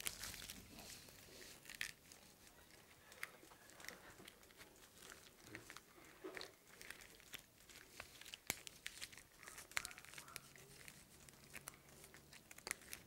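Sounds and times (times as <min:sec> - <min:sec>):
costume beads rustling and clicking: 0:00.0 - 0:13.0.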